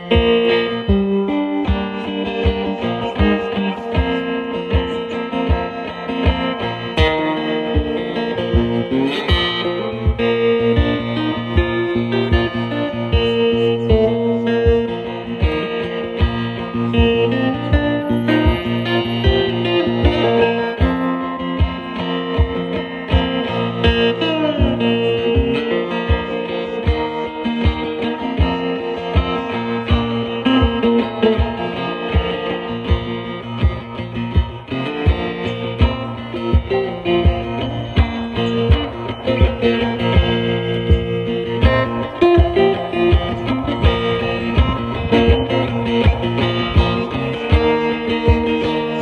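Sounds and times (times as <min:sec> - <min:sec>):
foot-stomped percussion board: 0:00.0 - 0:49.0
slide guitar blues riff: 0:00.0 - 0:49.0.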